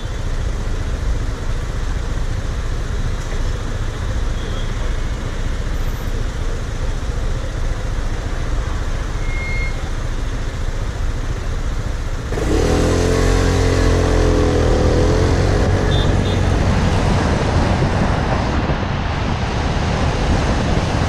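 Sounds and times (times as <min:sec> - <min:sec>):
traffic noise: 0:00.0 - 0:21.0
scooter engine revving: 0:12.1 - 0:18.1.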